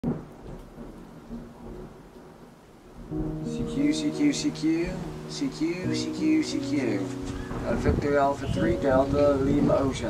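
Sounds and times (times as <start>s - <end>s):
radio static hiss: 3.4s - 10.0s.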